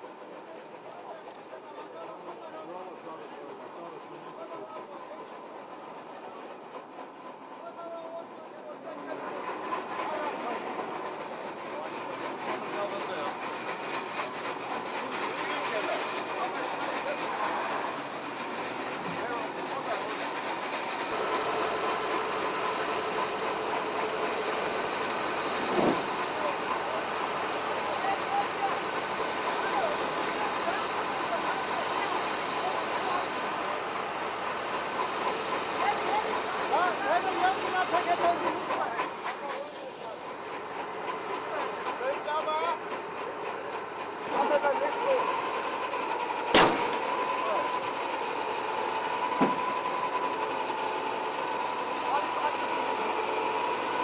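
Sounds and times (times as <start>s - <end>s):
heavy vehicle engine running: 0.0s - 54.0s
people's voices: 0.0s - 54.0s
sharp knock: 46.6s - 47.0s.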